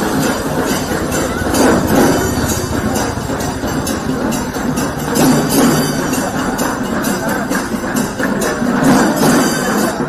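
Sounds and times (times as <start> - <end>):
jingling bells: 0.0 - 10.0
procession percussion clatter: 0.0 - 10.0.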